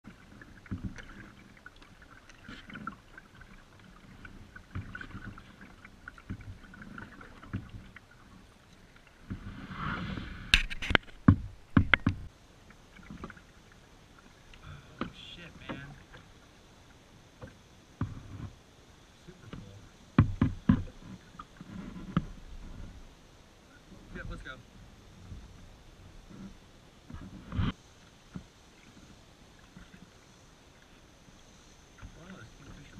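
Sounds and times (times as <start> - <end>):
kayak paddle splashing in water: 0.0 - 18.7, 23.9 - 32.9
sharp knocks: 20.2 - 20.9.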